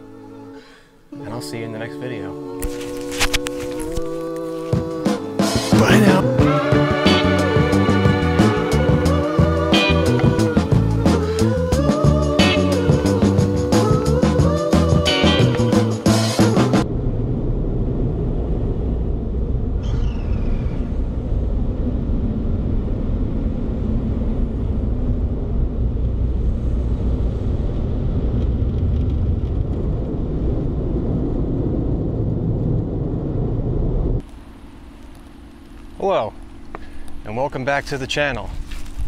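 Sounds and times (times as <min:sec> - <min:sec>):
quiet steady hum: 0:16.8 - 0:39.0
falling whistle: 0:19.8 - 0:21.1.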